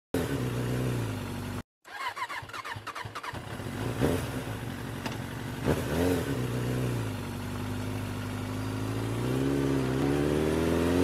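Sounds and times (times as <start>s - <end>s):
vehicle engine humming: 0.2s - 1.6s, 3.4s - 11.0s.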